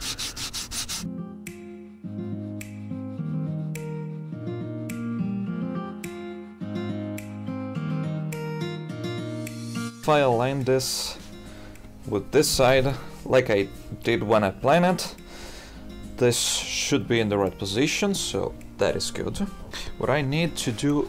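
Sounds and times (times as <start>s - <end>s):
hand sanding strokes: 0.0s - 1.1s
plucked guitar-like music: 1.0s - 21.0s.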